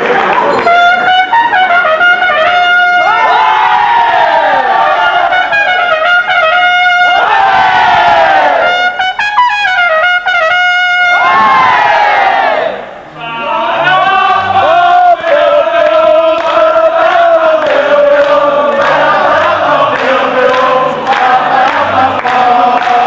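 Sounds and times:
trumpet playing falling notes: 0.4s - 12.5s.

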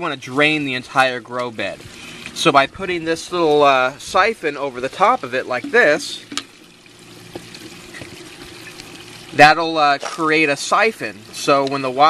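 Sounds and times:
water running and trickling: 1.6s - 12.0s.

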